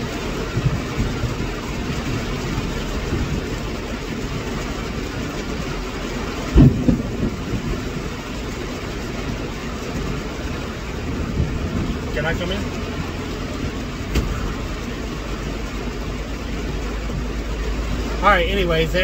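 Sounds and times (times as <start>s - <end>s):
heavy rain on truck roof: 0.0s - 19.0s
loud low thump: 6.5s - 7.7s, 14.0s - 14.6s.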